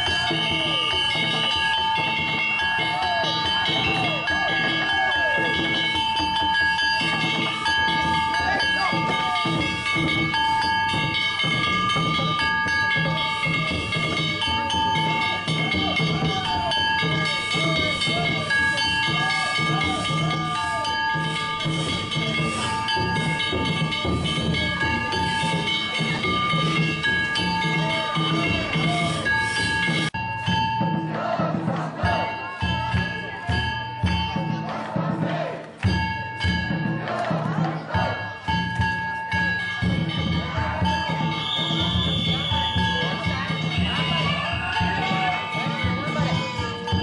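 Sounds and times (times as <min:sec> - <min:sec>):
hand gongs clanging: 0:00.0 - 0:35.2
drum beats: 0:00.0 - 0:47.0.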